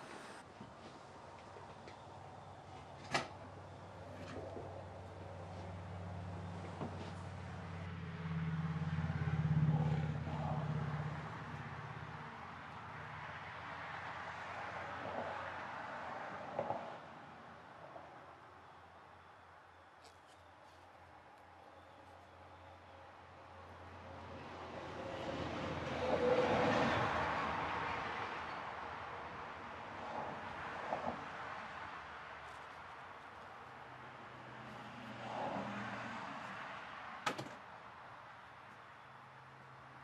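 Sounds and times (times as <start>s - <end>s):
passing vehicle rumble: 3.5s - 18.8s, 23.6s - 38.2s.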